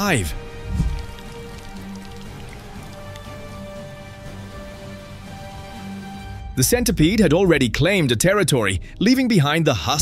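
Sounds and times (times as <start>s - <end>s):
music with long held notes: 0.0s - 6.8s
rain on leaves and soil: 0.8s - 3.7s.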